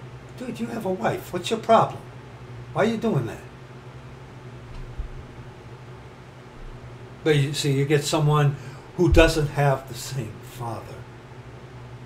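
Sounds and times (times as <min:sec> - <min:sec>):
low hum: 0:04.6 - 0:05.8, 0:06.4 - 0:07.1, 0:08.5 - 0:09.7
steady hiss: 0:06.6 - 0:11.2.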